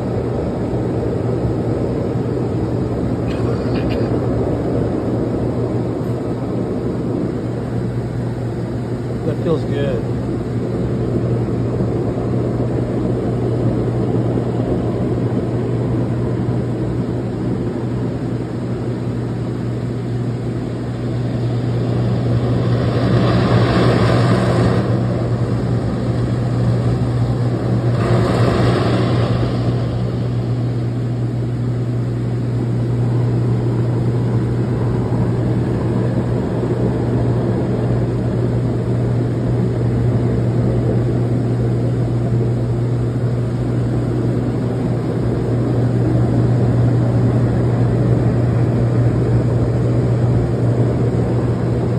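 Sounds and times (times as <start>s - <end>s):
pump humming: 0.0s - 51.9s.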